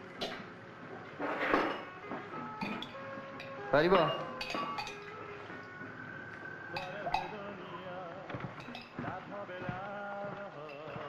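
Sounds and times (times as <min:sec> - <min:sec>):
light clinks of crockery: 0:02.6 - 0:05.2.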